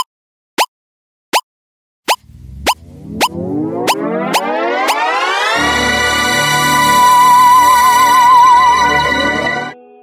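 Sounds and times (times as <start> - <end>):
pop sound effects: 2.1 - 5.6
electronic music with low notes: 2.2 - 7.4.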